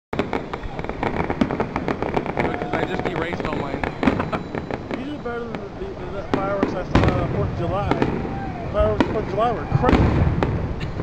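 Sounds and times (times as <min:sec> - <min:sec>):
fireworks bursting and crackling: 0:00.2 - 0:11.0.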